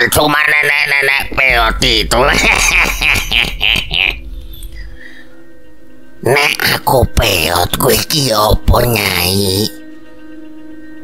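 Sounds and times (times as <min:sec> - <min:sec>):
soft background music: 0:00.0 - 0:11.0
person laughing: 0:00.2 - 0:04.2.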